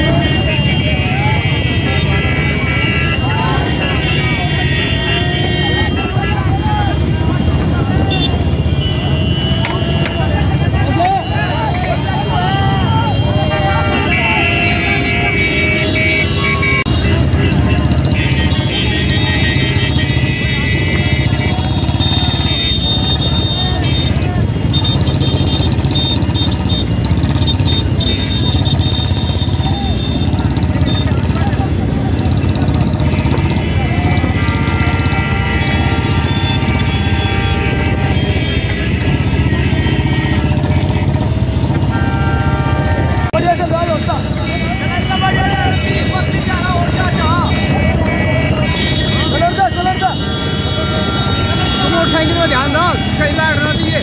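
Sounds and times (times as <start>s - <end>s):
men shouting: 0.0s - 24.7s, 31.3s - 41.0s, 41.9s - 54.0s
car horns tooting: 0.0s - 54.0s
vehicle engines running: 0.0s - 54.0s.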